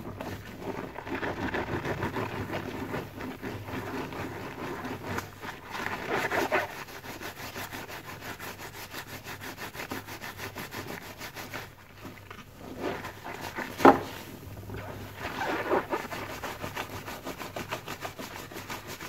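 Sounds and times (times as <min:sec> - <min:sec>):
sponge squelching in foam: 0:00.0 - 0:19.0.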